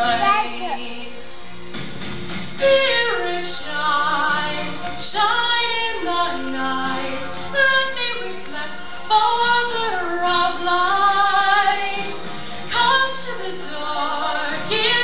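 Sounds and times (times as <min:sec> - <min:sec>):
high voice singing slow melody: 0:00.0 - 0:01.4.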